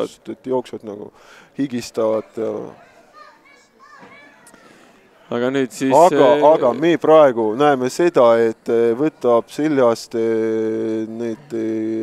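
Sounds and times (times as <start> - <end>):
distant high-pitched voices shouting: 2.7 - 4.9.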